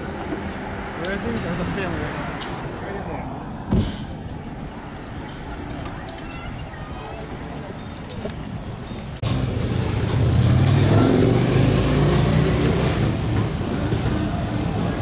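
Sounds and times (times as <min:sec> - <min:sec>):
motorcycle engines rolling past: 0:00.0 - 0:15.0
street traffic: 0:00.0 - 0:15.0.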